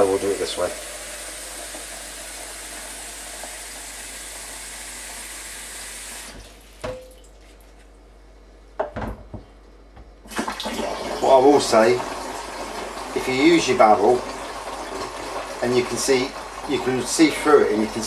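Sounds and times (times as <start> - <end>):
water running from a tap: 0.0 - 7.4, 10.3 - 18.0
knocks and clunks: 8.8 - 10.2.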